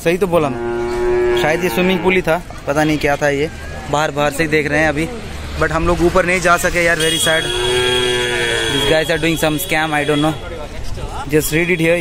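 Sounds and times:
long drawn-out call: 7.5 - 9.1.

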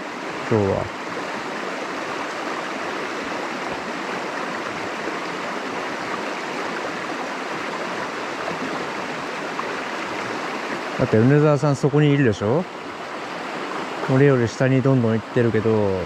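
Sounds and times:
stream rushing over rocks: 0.0 - 16.0.

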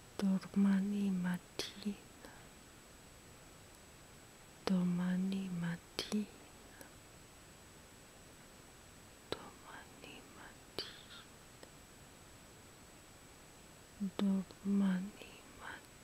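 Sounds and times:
woman whispering: 0.2 - 2.5, 4.7 - 6.9, 9.3 - 11.3, 14.0 - 15.9.

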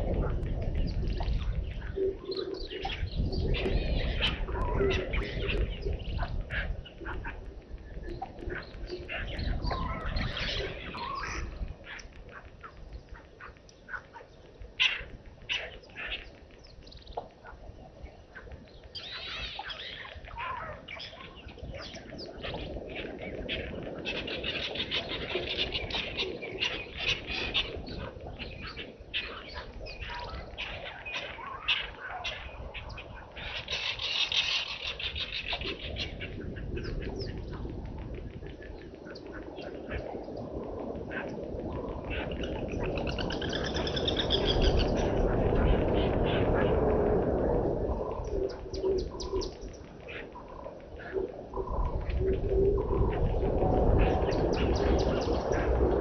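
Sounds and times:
birds chirping: 0.0 - 56.0.

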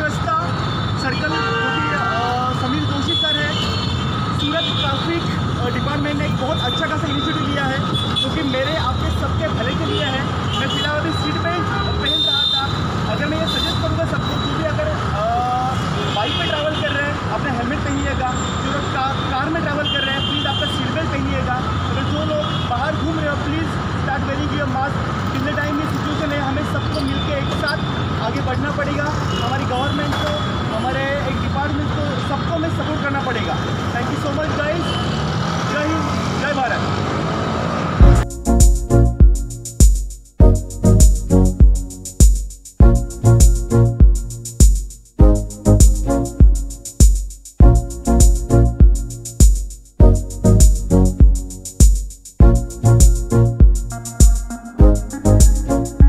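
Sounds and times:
road traffic: 0.0 - 56.0
electronic music with heavy drums: 38.0 - 56.0.

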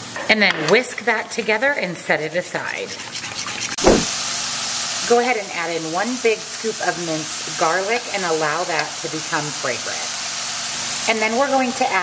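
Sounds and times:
thump: 3.8 - 4.1
mushrooms sizzling in a pan: 4.3 - 12.0.

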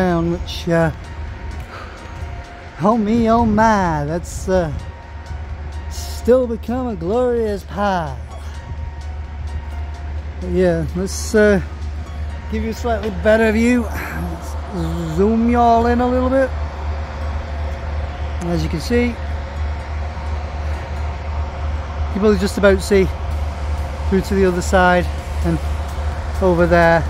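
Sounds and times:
low outdoor rumble: 0.0 - 27.0.

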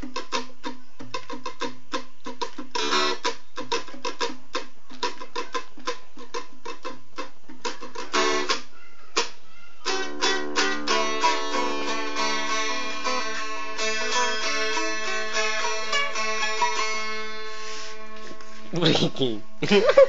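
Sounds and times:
plucked lute notes: 0.0 - 20.0.

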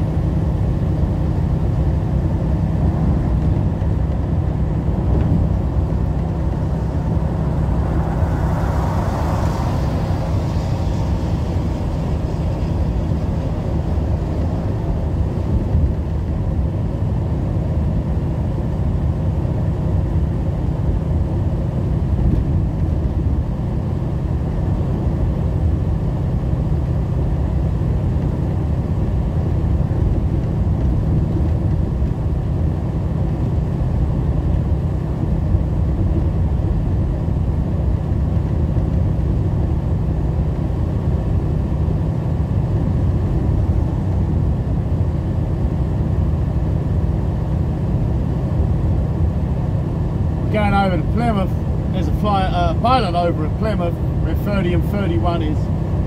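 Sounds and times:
truck diesel engine drone: 0.0 - 56.0
tyres on wet road: 3.3 - 16.5
man talking: 50.5 - 55.7.

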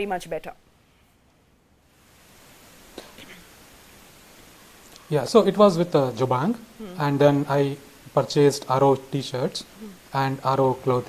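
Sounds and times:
faint line hiss: 0.6 - 11.0
faint murmur of a voice: 6.8 - 7.4, 9.6 - 10.2.

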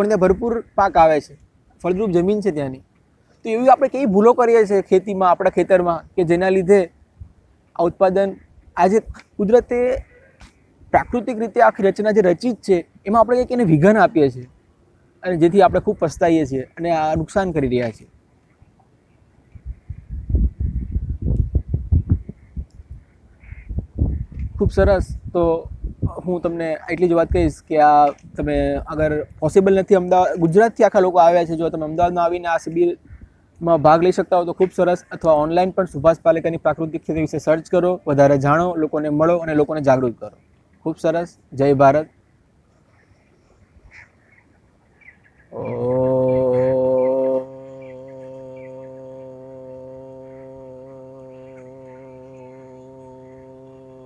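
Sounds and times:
low thumps and rumbles: 19.7 - 22.7
faint hiss: 24.3 - 54.0
pitched buzzing drone: 45.5 - 54.0.

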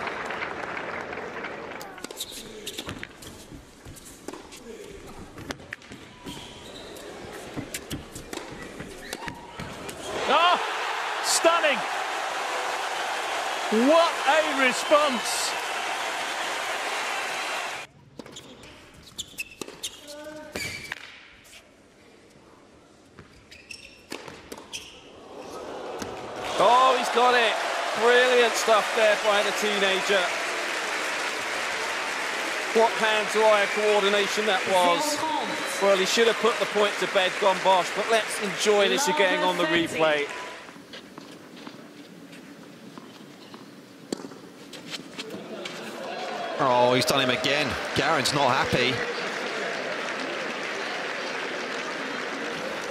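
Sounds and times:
crowd cheering and applauding: 0.0 - 2.1, 10.1 - 17.9, 25.2 - 40.6, 46.0 - 52.9
low court ambience: 0.0 - 52.9
tennis ball bouncing: 7.6 - 9.8, 43.0 - 44.5
person shouting: 10.2 - 10.7
racket hitting tennis ball: 44.1 - 44.4.

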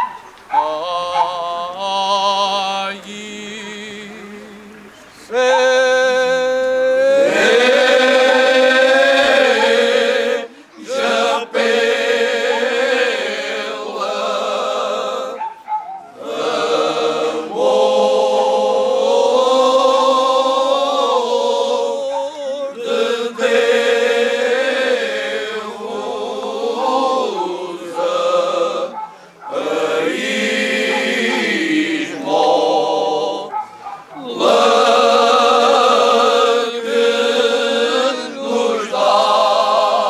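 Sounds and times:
male choir singing in harmony: 0.0 - 40.0.

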